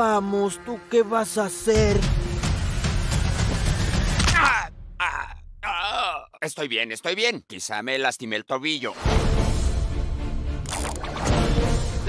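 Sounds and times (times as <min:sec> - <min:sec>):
background music: 0:00.0 - 0:05.6, 0:08.9 - 0:12.0
man groaning in pain: 0:04.3 - 0:06.4
man grunting: 0:04.3 - 0:06.4.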